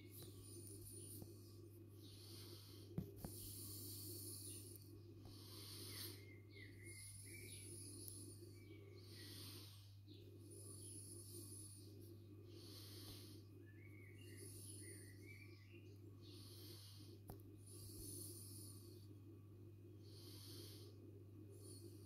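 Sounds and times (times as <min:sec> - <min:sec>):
low hum: 0:00.0 - 0:22.0
slow breathing: 0:00.0 - 0:22.0.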